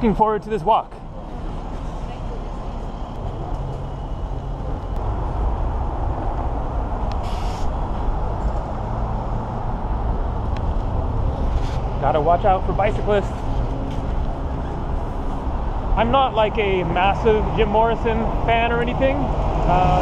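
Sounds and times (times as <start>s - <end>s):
passing cars rumbling: 0.9s - 20.0s.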